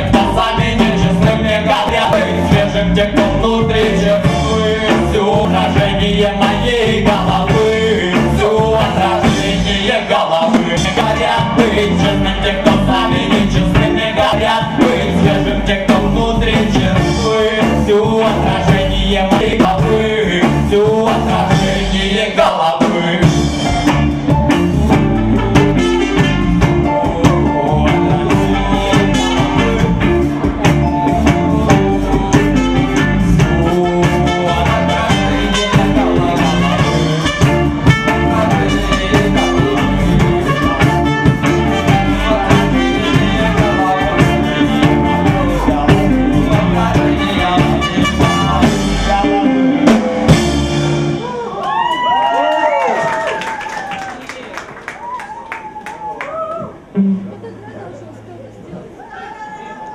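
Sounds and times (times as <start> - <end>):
reggae band playing live: 0.0 - 53.6, 56.7 - 59.9
audience whooping and cheering: 51.1 - 57.0, 58.9 - 59.9.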